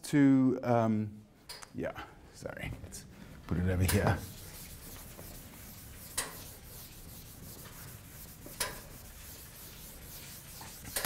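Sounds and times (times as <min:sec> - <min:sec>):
eraser rubbing on blackboard: 0:03.9 - 0:11.0.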